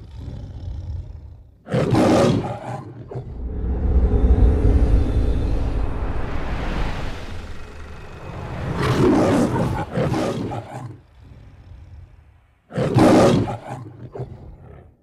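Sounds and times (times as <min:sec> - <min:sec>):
low rumble: 0:03.2 - 0:10.0
lion roaring: 0:07.4 - 0:15.0.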